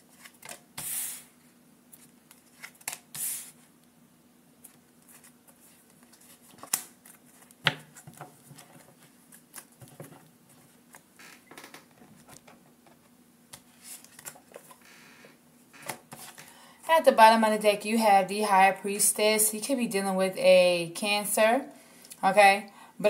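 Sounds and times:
cards shuffled by hand: 2.0 - 3.5
cards snapping: 6.6 - 7.9.

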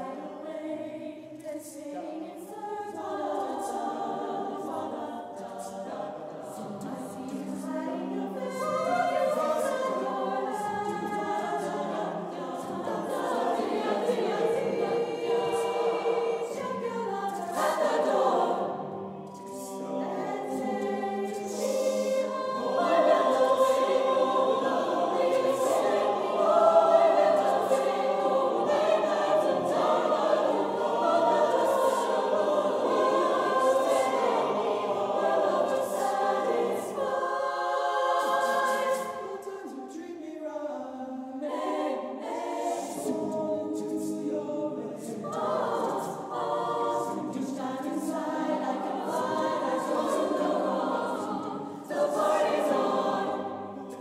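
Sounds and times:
mixed choir singing a cappella: 0.0 - 54.0.

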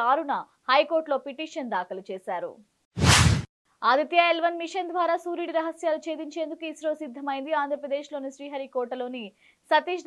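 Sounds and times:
whoosh transition effect: 3.0 - 3.5.

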